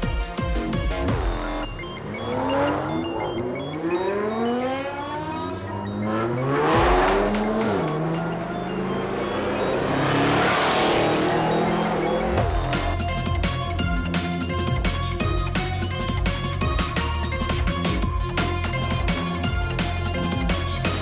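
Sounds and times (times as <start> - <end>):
car engines revving: 0.9 - 15.2.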